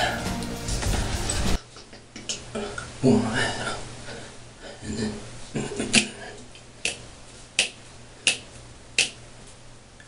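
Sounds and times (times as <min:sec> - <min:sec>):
sharp snapping clicks: 0:07.6 - 0:09.2.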